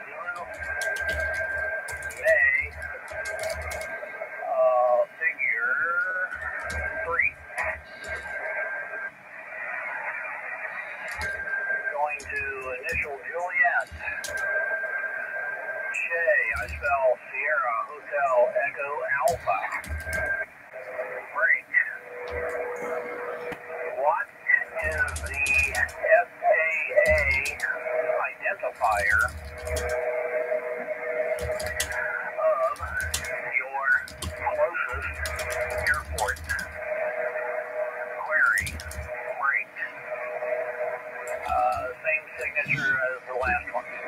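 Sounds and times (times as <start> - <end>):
distant operator's voice over radio: 0.0 - 44.0
radio static hiss: 0.0 - 44.0
steady heterodyne tones: 0.0 - 44.0.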